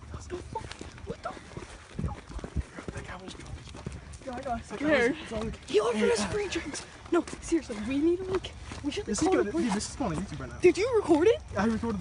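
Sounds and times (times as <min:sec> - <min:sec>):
footsteps on pavement: 0:00.0 - 0:12.0.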